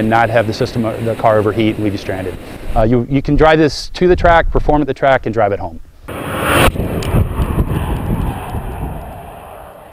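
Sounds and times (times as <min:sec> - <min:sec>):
wind buffeting microphone: 0:06.1 - 0:09.9.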